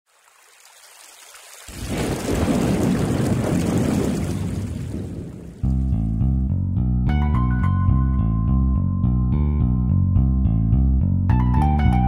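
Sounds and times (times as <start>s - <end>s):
rain hiss: 0.1s - 5.5s
thunder rumble: 1.7s - 6.0s.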